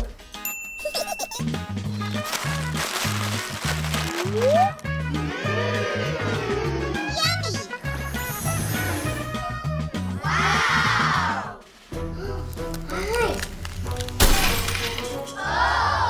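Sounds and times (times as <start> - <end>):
children's background music: 0.0 - 16.0
glass-like shatter: 14.2 - 15.3.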